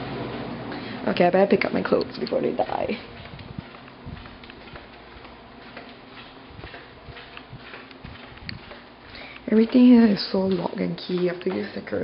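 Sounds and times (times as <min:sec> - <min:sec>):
footsteps on hard floor: 0:02.7 - 0:12.0.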